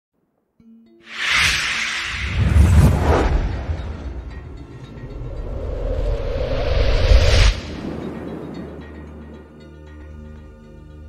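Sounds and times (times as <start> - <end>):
deep rumble: 1.2 - 9.5.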